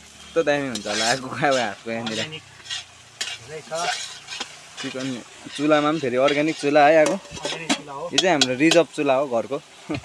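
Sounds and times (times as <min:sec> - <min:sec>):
metal spoon scraping wok: 0:00.2 - 0:09.0
voices: 0:03.3 - 0:09.6
spoon clicking against pan: 0:07.0 - 0:08.9.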